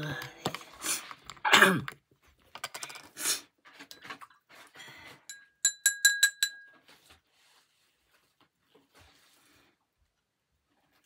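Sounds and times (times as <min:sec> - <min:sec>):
brush clinking on glass jar: 0:05.2 - 0:07.1.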